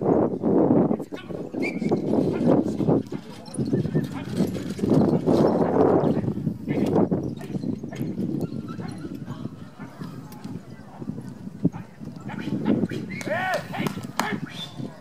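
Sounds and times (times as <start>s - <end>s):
voices: 0.8s - 15.0s
carriage running noise: 1.6s - 15.0s
pony hoofbeats: 1.8s - 15.0s.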